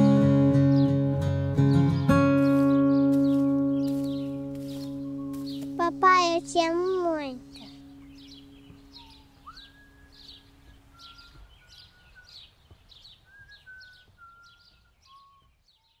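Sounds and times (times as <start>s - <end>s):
faint birdsong chirps: 0.0s - 16.0s
whistled bird notes: 3.8s - 5.7s, 7.6s - 16.0s
low held tone: 7.0s - 12.0s.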